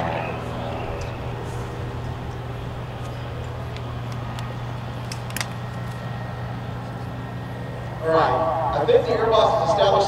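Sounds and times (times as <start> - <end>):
plane engine droning: 0.0 - 10.0.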